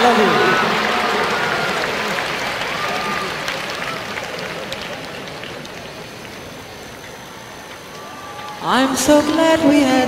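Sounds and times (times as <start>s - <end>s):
audience applauding: 0.0s - 9.4s.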